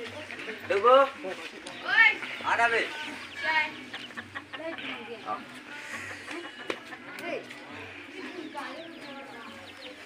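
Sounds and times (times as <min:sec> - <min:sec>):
chicken clucking: 0:01.6 - 0:10.0.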